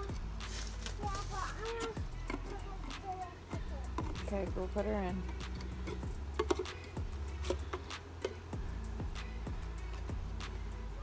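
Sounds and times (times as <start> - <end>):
honeybees humming: 0.0 - 11.0
tin can clicking on wood: 3.9 - 4.4, 5.2 - 8.5.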